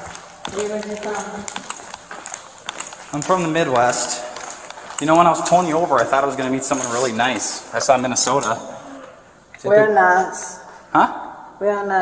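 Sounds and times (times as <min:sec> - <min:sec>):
footsteps on concrete: 0:00.0 - 0:08.6.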